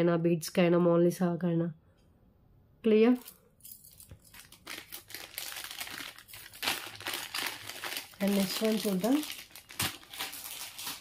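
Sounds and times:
plastic packaging crinkling: 3.7 - 11.0.

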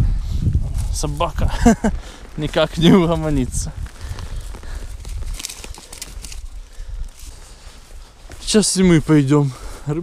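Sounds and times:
wind rumbling on microphone: 0.0 - 10.0
footsteps crunching dry reeds: 0.6 - 10.0.

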